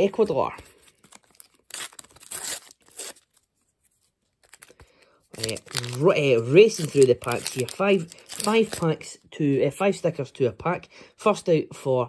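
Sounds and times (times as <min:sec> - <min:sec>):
paper packet tearing: 0:00.1 - 0:03.5, 0:04.3 - 0:09.1.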